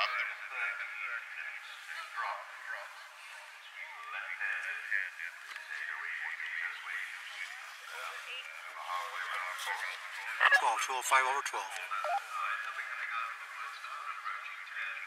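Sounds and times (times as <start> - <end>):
tinny commentary over radio: 0.0 - 15.0.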